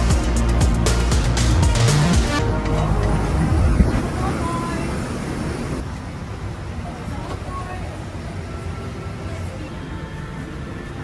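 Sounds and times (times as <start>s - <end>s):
aircraft cabin rumble: 2.4s - 5.9s
indistinct passenger voices: 2.4s - 11.0s.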